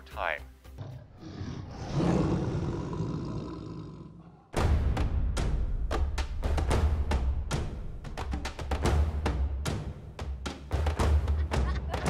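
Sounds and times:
lion roaring: 0:00.8 - 0:04.6
drum-led music: 0:04.6 - 0:12.0.

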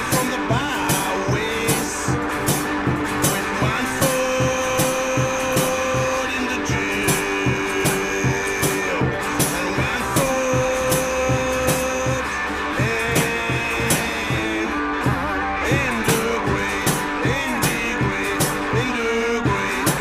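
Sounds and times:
steady drum beat: 0:00.0 - 0:20.0.

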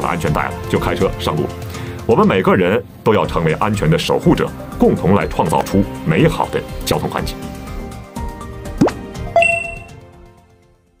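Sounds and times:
background music: 0:00.0 - 0:11.0
bright bell-like ding: 0:09.4 - 0:10.0.

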